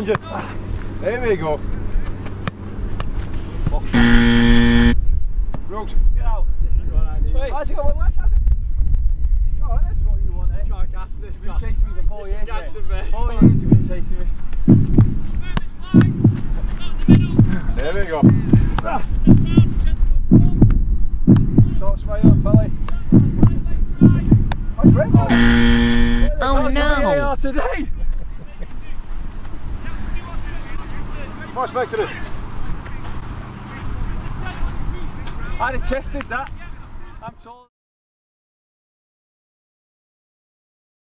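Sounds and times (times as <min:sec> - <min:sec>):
low wind rumble: 0:04.9 - 0:25.4
heartbeat-like double thump: 0:13.4 - 0:14.0, 0:14.7 - 0:15.3, 0:16.0 - 0:16.5, 0:17.1 - 0:17.6, 0:18.2 - 0:26.3
football thuds: 0:14.7 - 0:17.6, 0:20.4 - 0:25.3
man speaking: 0:24.0 - 0:27.3.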